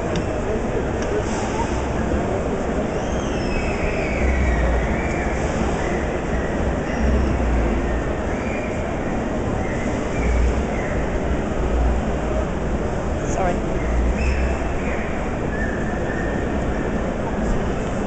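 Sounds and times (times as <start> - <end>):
faint high wavering squeals: 2.7 - 11.8, 13.7 - 17.5.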